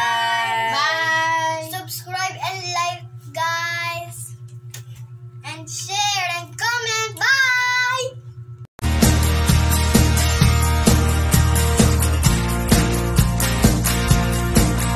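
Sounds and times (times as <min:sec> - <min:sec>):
steady low hum: 0:00.0 - 0:14.9.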